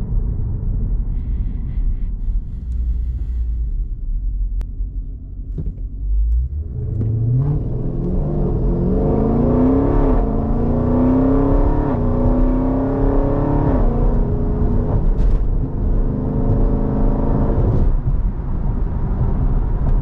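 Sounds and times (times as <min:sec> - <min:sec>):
car engine accelerating: 0:02.4 - 0:20.0.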